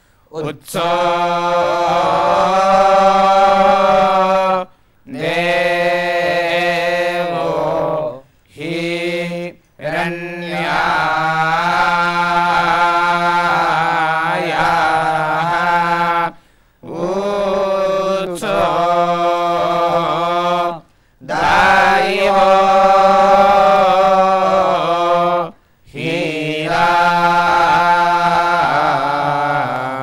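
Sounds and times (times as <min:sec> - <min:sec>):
young men chanting hymns: 0:00.3 - 0:30.0.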